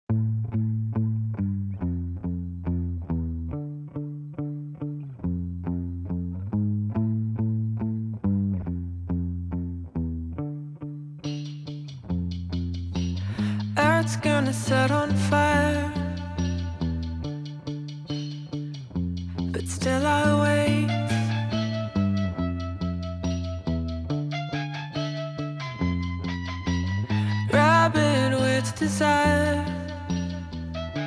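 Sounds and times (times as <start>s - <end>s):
low guitar riff: 0.1s - 31.0s.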